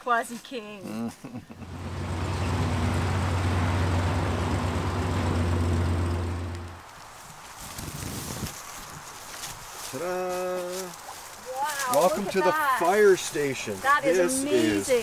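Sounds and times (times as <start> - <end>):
outdoor background noise: 0.0 - 15.0
truck engine humming: 1.5 - 7.0.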